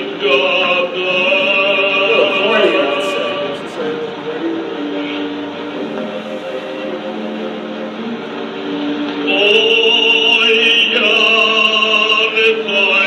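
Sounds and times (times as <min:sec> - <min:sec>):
held instrumental notes: 0:00.0 - 0:11.4
soundtrack hiss: 0:00.0 - 0:12.4
person singing: 0:00.0 - 0:13.0.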